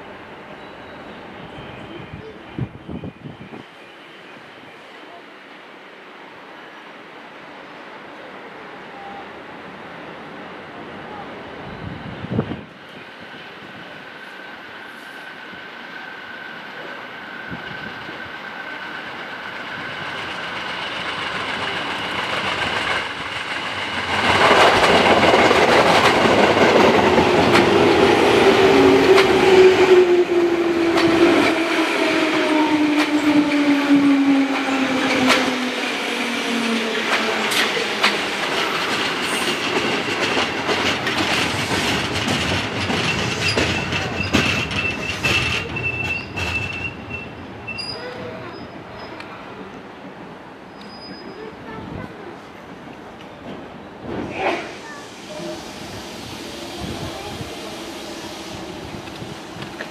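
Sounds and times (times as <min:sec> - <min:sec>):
wheels clacking over rail joints: 0:36.5 - 0:48.3
high squeal: 0:50.7 - 0:51.6.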